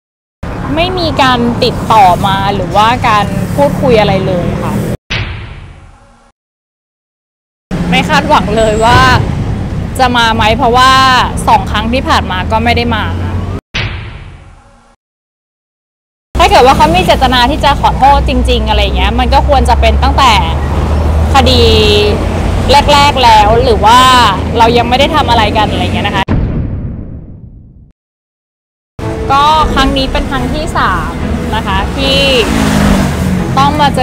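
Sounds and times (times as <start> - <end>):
woman speaking into microphones: 0.6 - 5.0, 7.9 - 9.3, 10.0 - 13.4, 16.4 - 20.6, 21.3 - 26.3, 29.3 - 32.7, 33.5 - 34.0
impact bang: 5.1 - 6.1, 13.8 - 14.9, 26.3 - 27.9.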